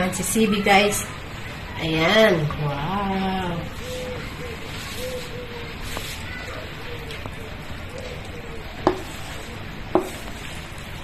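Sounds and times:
wooden spatula pushing food: 3.7 - 7.4, 8.0 - 11.0.

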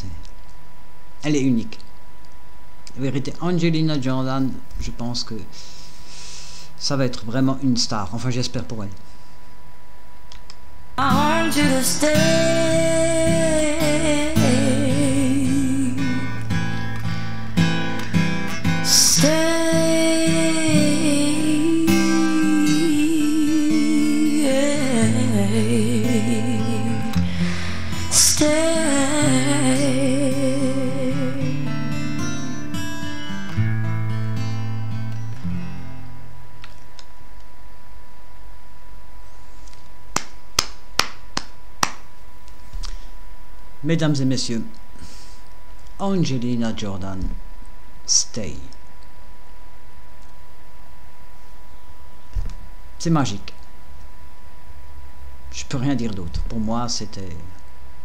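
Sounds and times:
faint background hum: 0.0 - 58.0
woman singing a slow ballad: 11.0 - 16.5, 18.8 - 32.7
acoustic guitar: 11.0 - 37.4.

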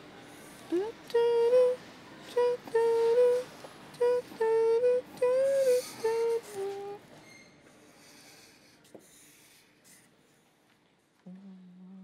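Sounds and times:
person humming a tune: 0.7 - 7.0, 11.2 - 12.0.

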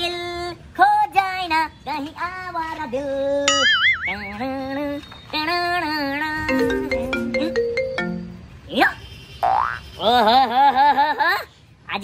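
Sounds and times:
phone ringtone melody: 3.5 - 4.4, 6.4 - 8.6.

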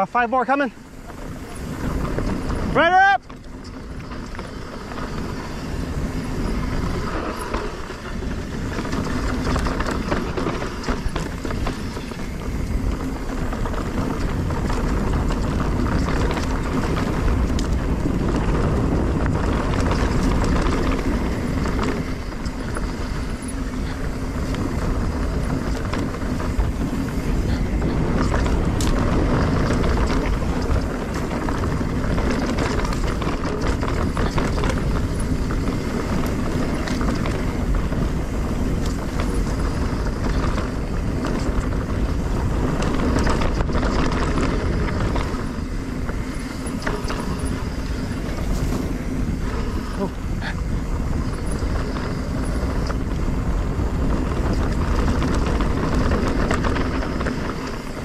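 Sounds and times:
bike clicks and rattles: 0.0 - 58.0
bike tyres rolling over dirt: 0.0 - 58.0
wind rumble on microphone: 0.0 - 58.0.

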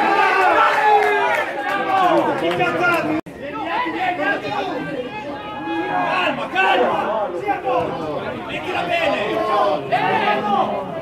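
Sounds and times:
men shouting and talking: 0.0 - 11.0.

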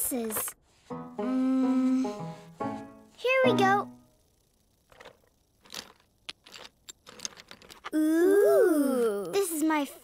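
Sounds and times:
toy blocks clicking and knocking: 4.8 - 8.0.

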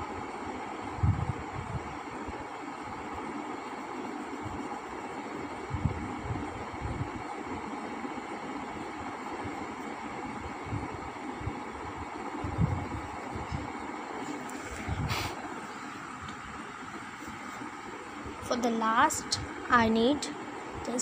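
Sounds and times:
steady rumbling noise: 0.0 - 21.0.

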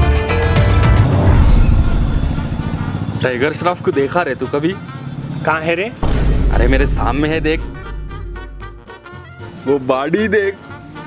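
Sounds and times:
loud low rumbling with hiss: 1.0 - 3.4, 6.0 - 9.0.

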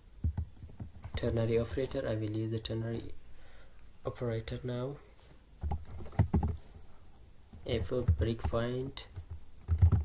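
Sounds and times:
computer keyboard keystrokes: 0.2 - 1.2, 5.6 - 6.6, 7.5 - 10.0.

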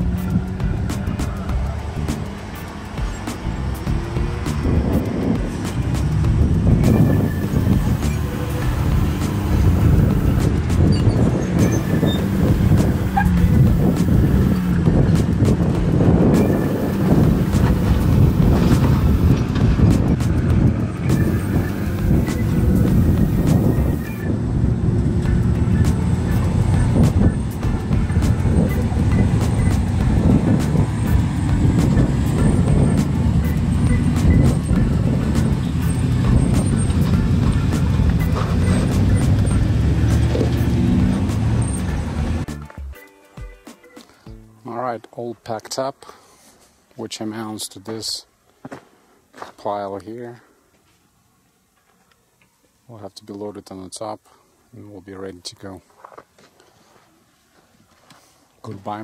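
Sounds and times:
truck engines revving: 0.0 - 42.8.

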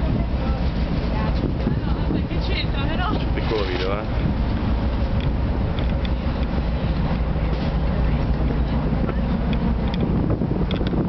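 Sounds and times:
ship engine low rumble: 0.0 - 11.0.

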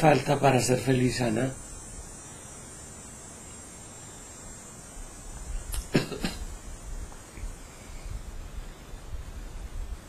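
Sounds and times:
microphone hiss: 0.0 - 10.0
sharp click: 5.7 - 5.9.

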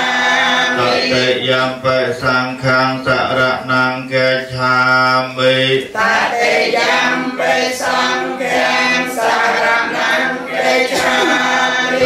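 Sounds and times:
voices chanting in unison: 0.0 - 12.0.

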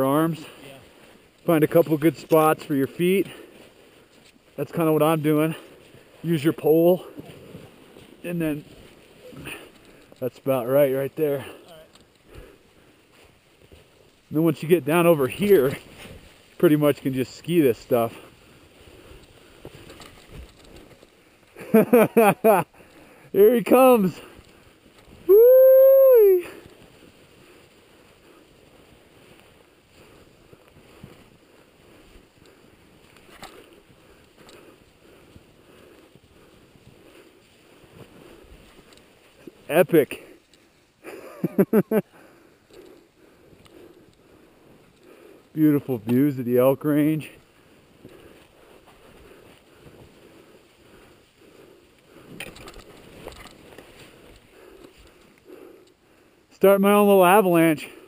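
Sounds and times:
skis sliding through snow: 0.0 - 57.8
person whooping yell: 25.2 - 26.6.

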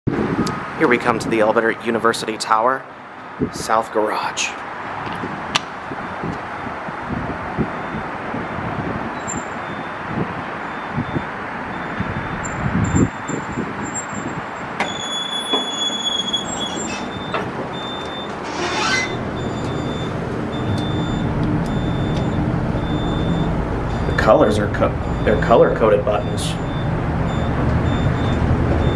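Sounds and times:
steady background noise: 0.3 - 28.9
elevator doors opening: 7.8 - 10.1, 10.7 - 28.9
high repeating beep: 18.9 - 28.9.

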